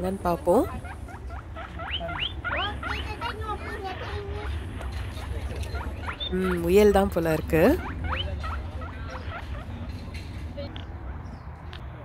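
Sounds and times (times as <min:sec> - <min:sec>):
guinea pigs wheeking: 0:00.0 - 0:10.2.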